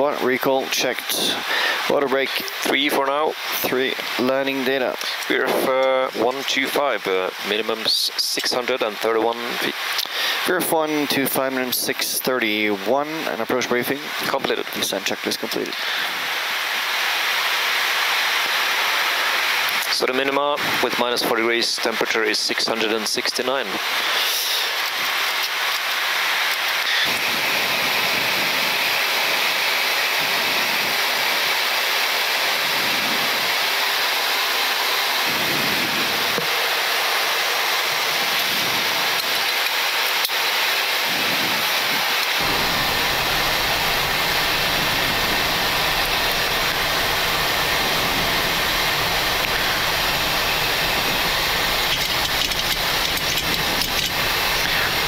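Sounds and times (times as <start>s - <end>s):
airflow and engine noise: 0.0s - 55.0s
deep rumble: 42.4s - 55.0s.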